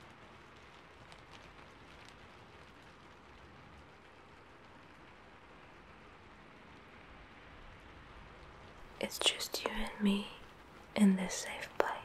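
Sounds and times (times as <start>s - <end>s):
faint steady hiss: 0.0s - 12.0s
soft crackles: 0.0s - 12.0s.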